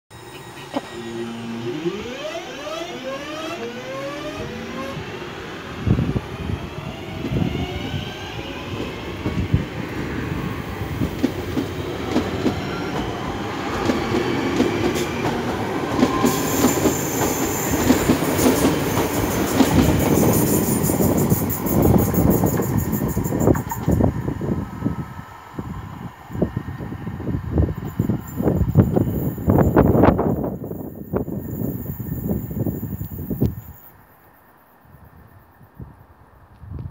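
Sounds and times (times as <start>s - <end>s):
electric train motors whining: 0.1s - 24.6s.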